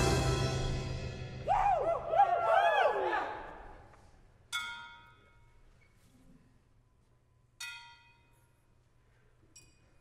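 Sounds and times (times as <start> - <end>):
people whooping: 1.4 - 3.5.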